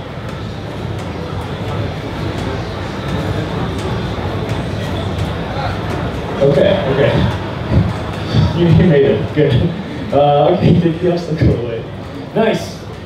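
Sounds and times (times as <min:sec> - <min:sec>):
crowd talking: 0:00.0 - 0:13.0.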